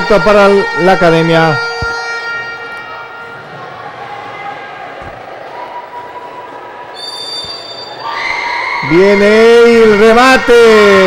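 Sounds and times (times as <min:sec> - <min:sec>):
sports hall crowd: 0:00.0 - 0:11.0
referee's whistle: 0:06.9 - 0:08.6.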